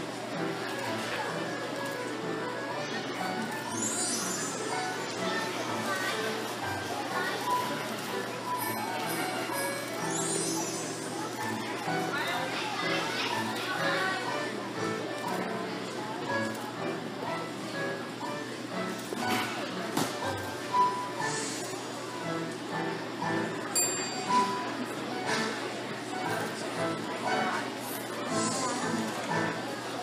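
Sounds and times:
chatter of children and adults: 0.0s - 30.0s
background music: 28.2s - 29.7s.

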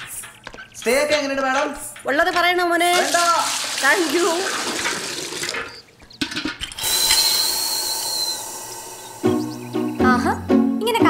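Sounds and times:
tap clicking and squeaking: 0.0s - 0.9s
tap hissing with high whistle: 6.7s - 10.0s
music: 9.2s - 11.0s.

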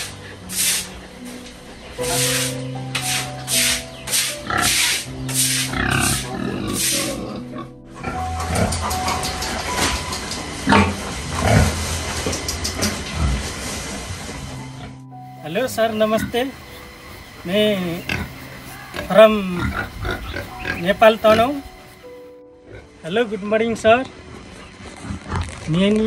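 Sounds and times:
broom scrubbing wet concrete: 0.0s - 1.0s, 2.0s - 7.4s
pigs grunting: 0.0s - 15.0s, 17.3s - 22.9s, 24.0s - 25.9s
background music: 0.0s - 26.0s.

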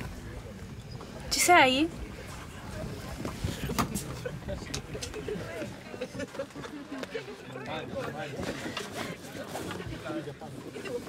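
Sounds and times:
background chatter of voices: 0.0s - 11.0s.

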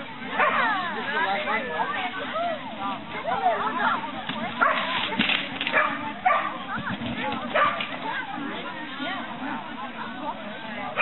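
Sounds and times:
people talking in background: 0.0s - 11.0s.

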